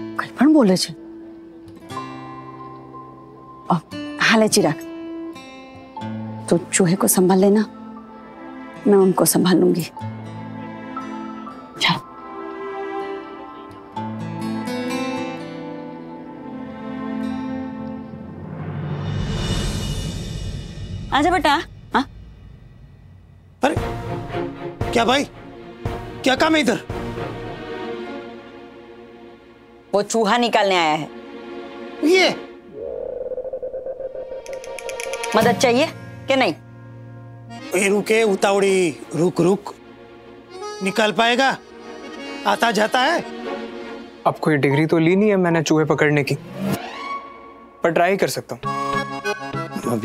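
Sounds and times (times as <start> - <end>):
soft background music: 0.0 - 20.2, 21.1 - 32.7, 34.5 - 50.0
sustained fluttering music note: 32.7 - 35.8
rapid high ticking percussion: 34.2 - 35.9.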